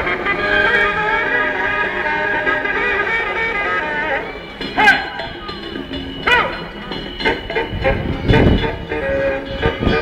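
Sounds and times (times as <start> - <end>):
melody of held notes: 0.0 - 10.0.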